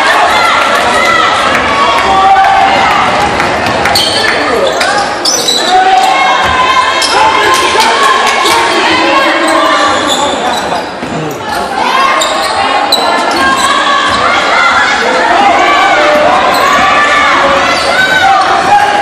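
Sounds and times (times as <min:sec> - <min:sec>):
sneakers squeaking: 0:03.8 - 0:14.4, 0:16.4 - 0:18.2.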